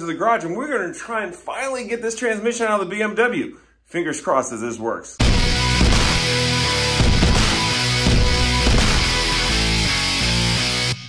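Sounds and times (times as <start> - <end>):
rock music with distorted guitar: 5.2 - 11.0.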